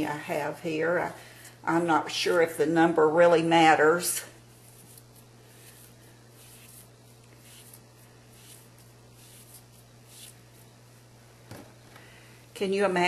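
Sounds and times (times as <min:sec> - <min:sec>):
steady low hum: 0:00.0 - 0:13.0
fabric rustling by hand: 0:04.5 - 0:11.1.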